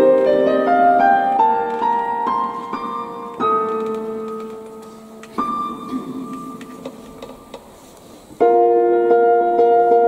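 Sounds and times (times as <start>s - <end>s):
digital piano chords: 0.0s - 10.0s.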